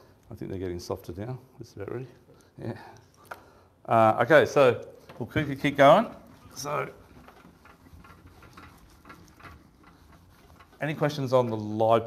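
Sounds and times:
whiteboard being wiped: 5.2s - 11.8s.

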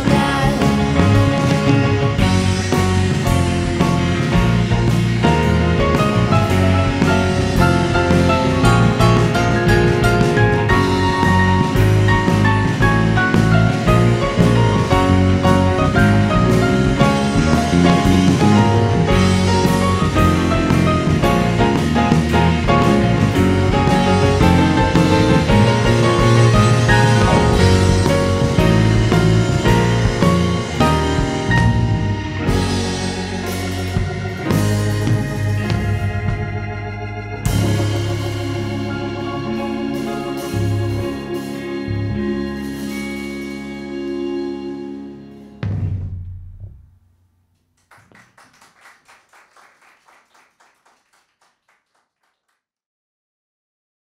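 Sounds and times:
live rock band playing: 0.0s - 46.1s
faint hand clapping: 47.8s - 52.6s.

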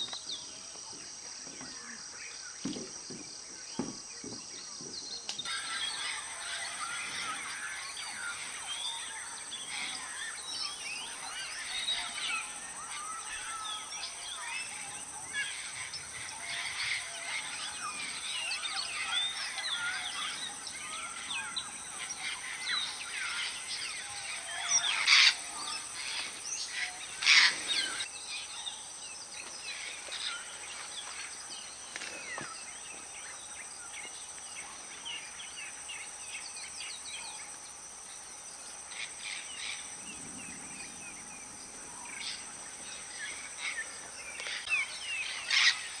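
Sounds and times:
high insect hum: 0.0s - 46.0s
loud harsh parrot calls: 15.4s - 28.1s.

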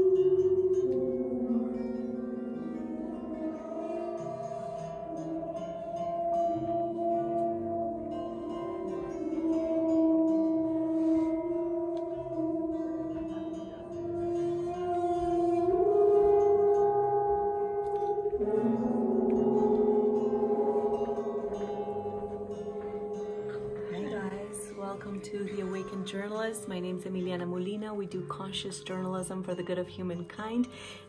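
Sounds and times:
gong rubbed with friction mallet: 0.0s - 27.8s.

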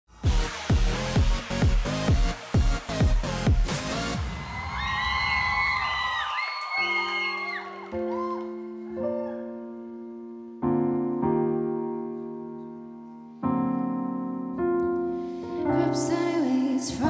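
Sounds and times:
piano playing sustained chords: 6.8s - 17.0s.

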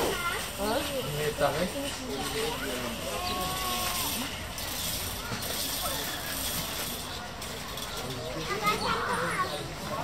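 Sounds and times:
people talking indistinctly: 0.0s - 10.0s
steady outdoor noise: 0.0s - 10.0s.

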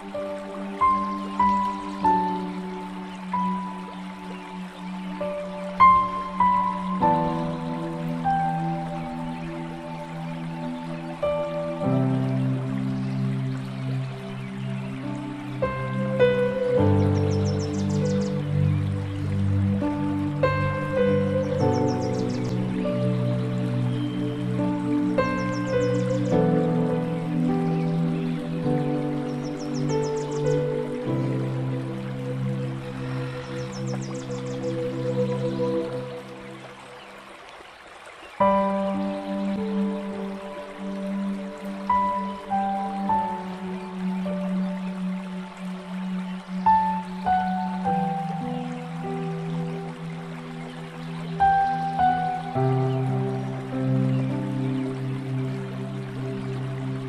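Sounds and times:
calm new-age music: 0.0s - 57.0s.

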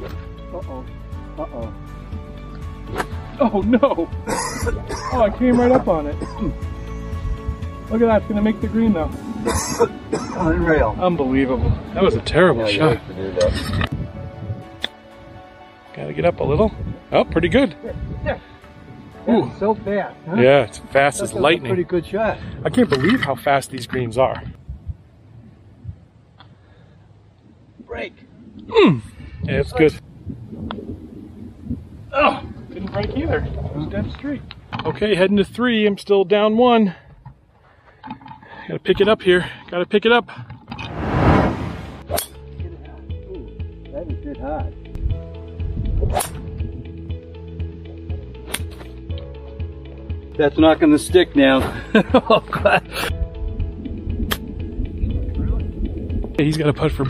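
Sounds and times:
background music: 0.0s - 25.9s, 40.8s - 57.0s
golf club striking ball: 48.4s - 48.9s.

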